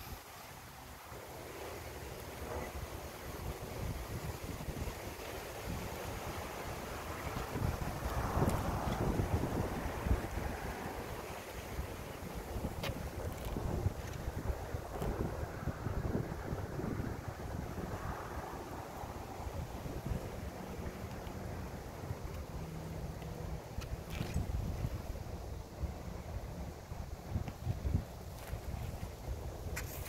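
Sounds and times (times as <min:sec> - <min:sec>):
wind buffeting microphone: 0:02.4 - 0:30.0.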